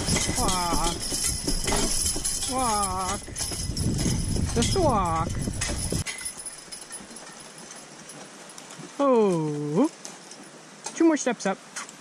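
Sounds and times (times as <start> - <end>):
horse hoofbeats on dirt: 0.0 - 9.0.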